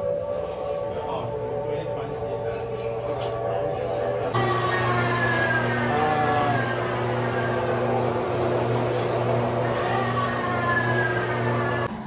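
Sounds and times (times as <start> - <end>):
electric motor humming: 1.3 - 12.0
motor whine falling in pitch: 4.3 - 11.9.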